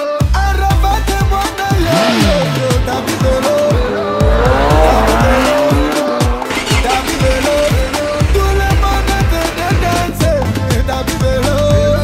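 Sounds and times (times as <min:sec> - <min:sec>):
dance music with kick drum: 0:00.7 - 0:12.0
motorcycle engine revving: 0:00.7 - 0:12.0.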